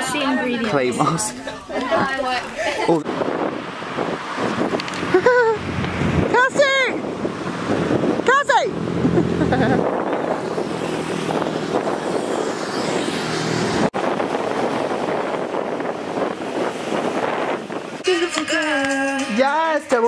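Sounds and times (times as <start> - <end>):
wind over microphone: 1.4 - 18.0
breaking surf: 9.1 - 18.0.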